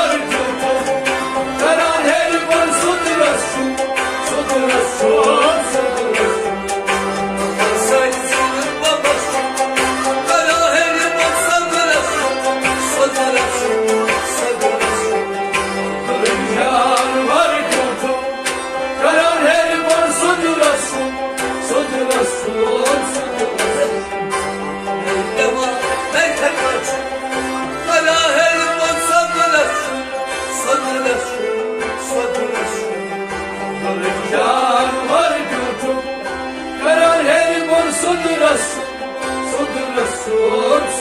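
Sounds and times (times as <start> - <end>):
harmonium and strings: 0.0 - 41.0
person singing: 0.0 - 41.0.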